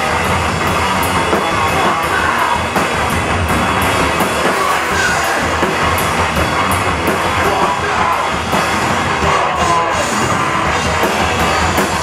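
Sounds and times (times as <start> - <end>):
drum kit and cymbals: 0.0 - 12.0
live heavy rock band: 0.0 - 12.0.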